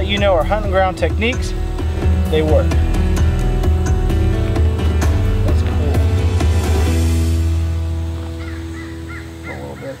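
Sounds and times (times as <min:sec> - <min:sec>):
background music: 0:00.0 - 0:10.0
bird chirping: 0:08.1 - 0:10.0.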